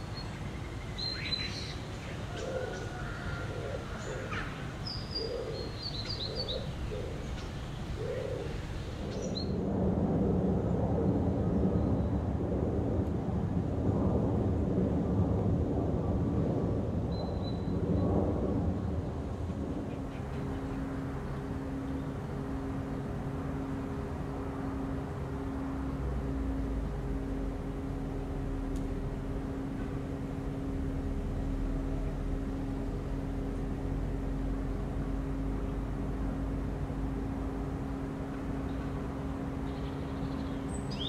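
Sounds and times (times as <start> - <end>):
pigeon cooing: 2.3 - 9.1
small birds chirping: 3.8 - 9.5
low street ambience: 17.3 - 41.0.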